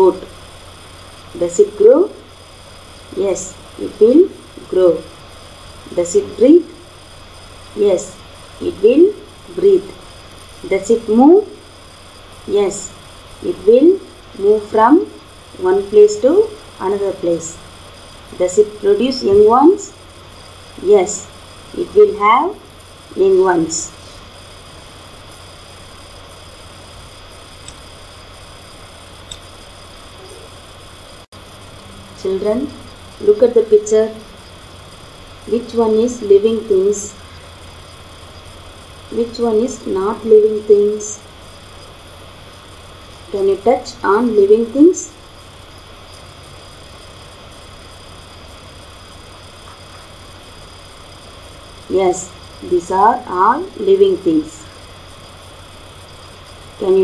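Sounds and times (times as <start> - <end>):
even hiss: 0.0 - 57.0
low mains hum: 0.0 - 57.0.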